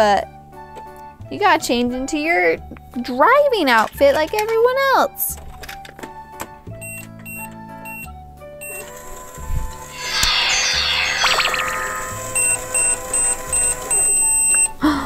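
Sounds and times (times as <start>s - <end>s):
short electronic beeps: 10.0s - 13.0s
toy microwave electronic running sound: 12.4s - 14.8s.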